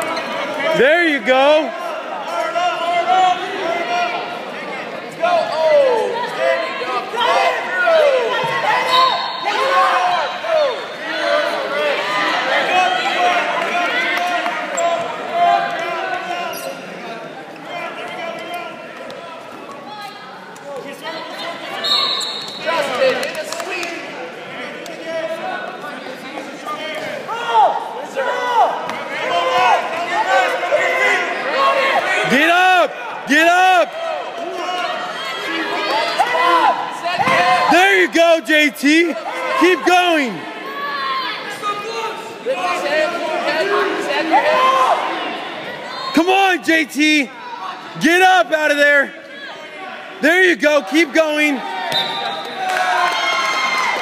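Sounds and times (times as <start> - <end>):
people shouting in echoing gym: 0.0 - 23.2, 26.2 - 38.3, 38.9 - 50.4.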